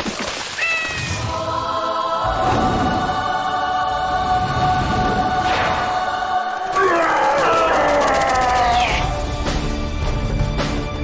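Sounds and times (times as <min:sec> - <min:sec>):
choir holding a chord: 0:01.3 - 0:06.8.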